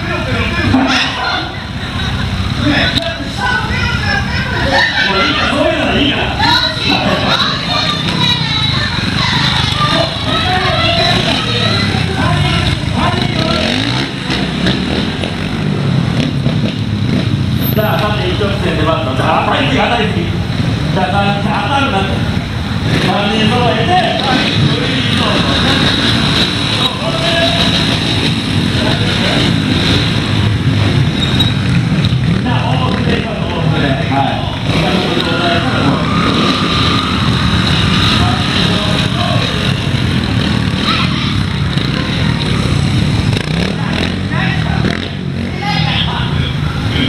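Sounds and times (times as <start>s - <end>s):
motorcycle engines running: 0.0s - 47.0s
voices: 0.0s - 47.0s.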